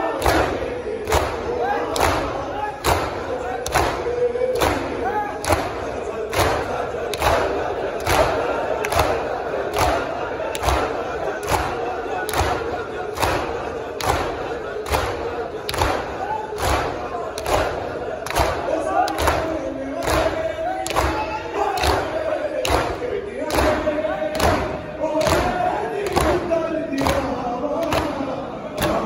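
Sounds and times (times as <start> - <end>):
crowd beating chests in unison: 0.0 - 29.0
men chanting loudly: 0.0 - 29.0.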